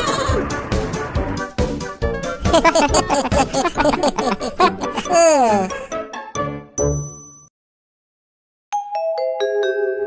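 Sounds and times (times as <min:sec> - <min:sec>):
cartoon music with a beat: 0:00.0 - 0:07.2
wavering drawn-out vocal cry: 0:02.6 - 0:05.9.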